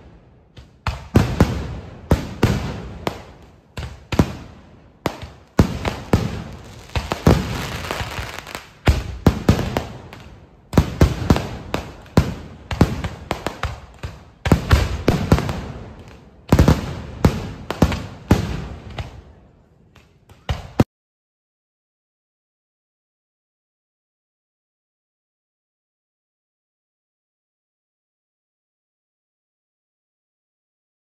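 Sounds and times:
fireworks crackling: 0.0 - 19.2
fireworks bangs: 0.0 - 19.4.

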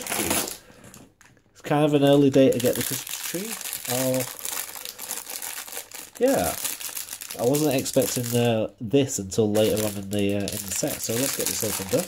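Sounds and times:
plastic bag crinkling: 0.0 - 1.4, 2.0 - 8.6, 9.4 - 12.0.

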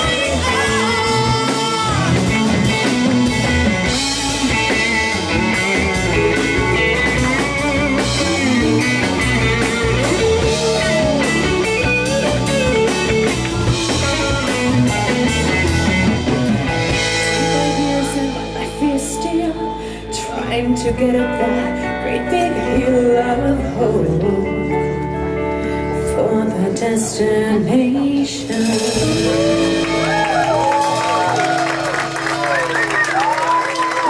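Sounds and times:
bass: 0.0 - 34.0
drums: 0.0 - 34.0
electric guitar: 0.0 - 34.0
keyboard: 0.0 - 34.0.

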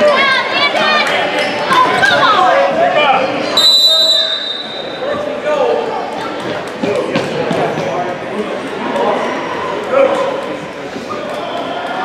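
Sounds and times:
spectators and players talking: 0.0 - 12.0
referee's whistle blast: 3.6 - 5.0.

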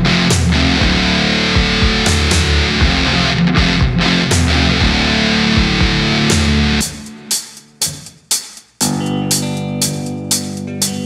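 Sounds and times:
distorted electric guitar: 0.0 - 7.4, 8.8 - 11.0
heavy rock band: 0.0 - 7.9.

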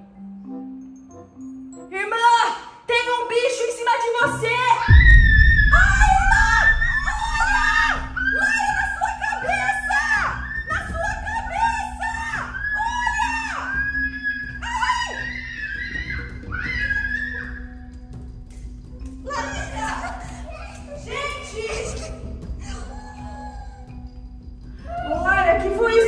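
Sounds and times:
background music held low note: 4.9 - 10.2
girl screaming high-pitched: 11.6 - 17.7.

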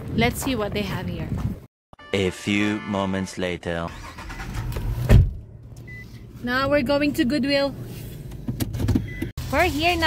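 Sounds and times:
loud low thump: 5.0 - 5.4.

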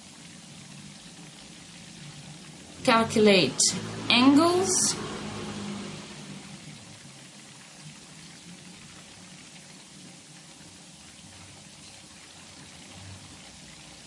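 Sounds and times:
faint steady hiss: 0.0 - 14.0.

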